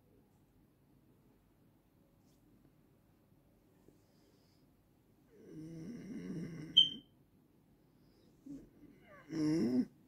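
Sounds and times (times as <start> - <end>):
sharp high squeak: 6.8 - 7.0.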